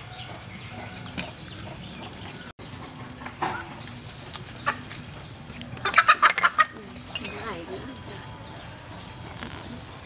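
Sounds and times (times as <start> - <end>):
hen clucking: 5.8 - 8.0.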